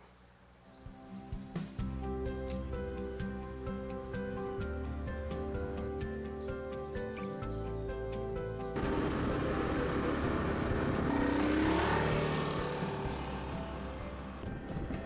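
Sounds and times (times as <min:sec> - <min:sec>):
background music: 0:00.8 - 0:15.0
small motorcycle riding by: 0:08.8 - 0:14.7.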